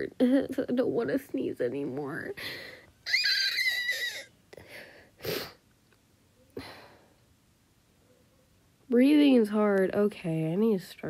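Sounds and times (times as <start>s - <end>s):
squeaky wheezing breath: 2.4s - 5.6s.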